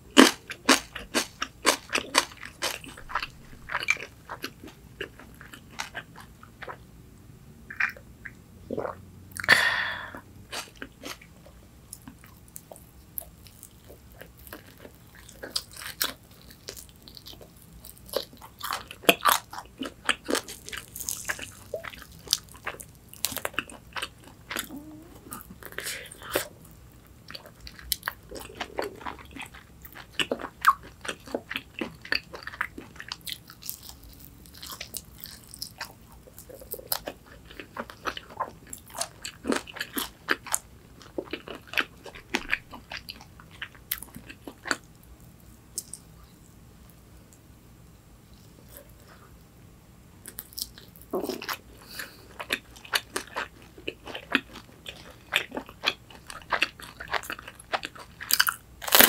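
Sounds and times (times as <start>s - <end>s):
crunching fried chicken: 0.1s - 6.8s, 10.5s - 45.0s, 50.2s - 59.0s
quiet chewing: 10.5s - 47.4s, 50.2s - 59.0s.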